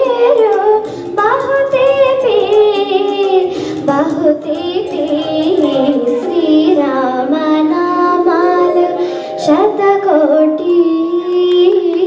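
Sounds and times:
girl singing into microphone: 0.0 - 12.0
recorded backing track: 0.0 - 12.0.

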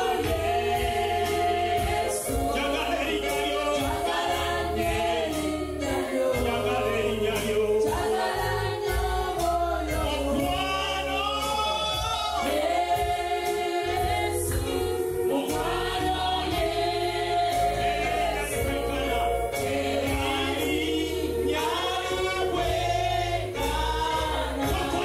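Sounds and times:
gospel worship singing: 0.0 - 25.0
low musical backing: 0.0 - 25.0.

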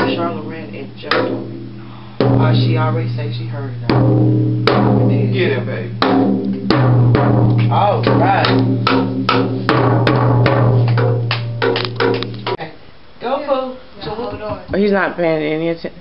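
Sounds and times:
drum kit struck with drumsticks: 0.0 - 12.6.

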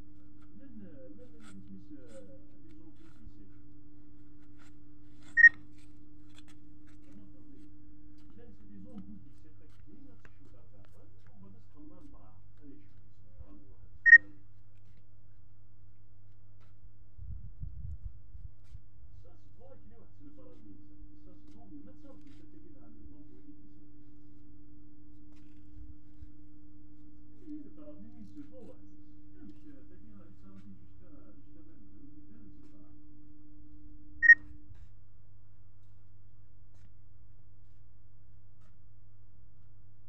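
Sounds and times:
faint low hum: 0.0 - 40.0.

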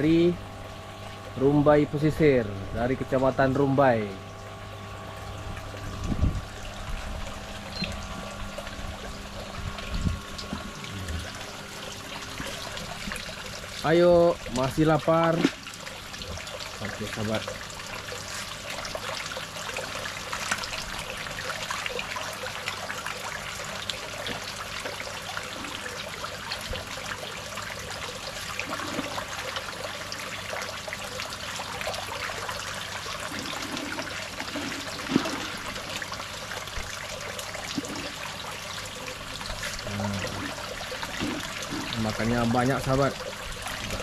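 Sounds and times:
water trickling from a pipe: 0.0 - 44.0
fish splashing at surface: 28.2 - 31.2, 31.8 - 42.2.

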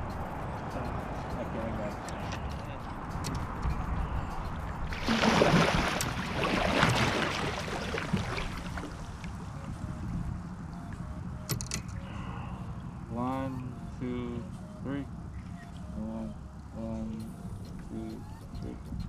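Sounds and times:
water splashing beside kayak: 4.8 - 9.9.

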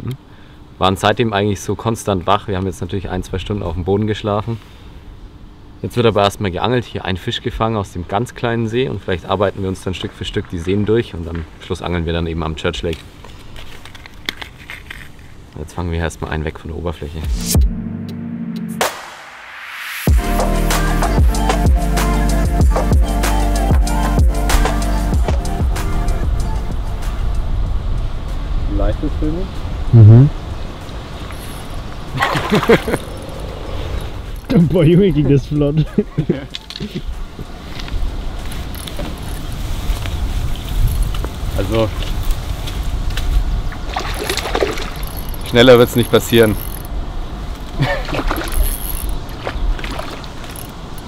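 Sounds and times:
fishing tackle clicks: 38.4 - 39.4, 44.1 - 47.0, 48.3 - 49.4, 50.3 - 51.0.

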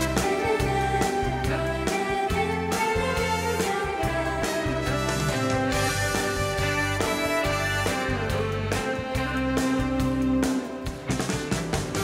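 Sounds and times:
band playing instrumental intro: 0.0 - 12.0.

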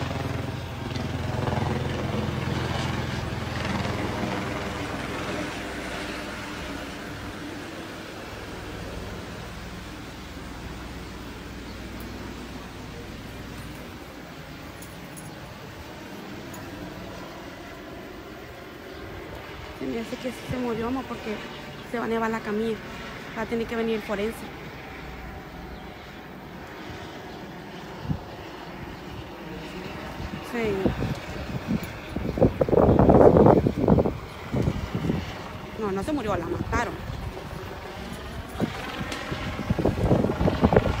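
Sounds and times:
rushing outdoor background noise: 0.0 - 41.0
wind buffeting microphone: 26.8 - 41.0.

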